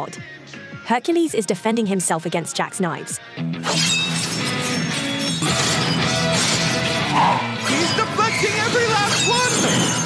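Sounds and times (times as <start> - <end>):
dramatic background music: 3.4 - 10.0.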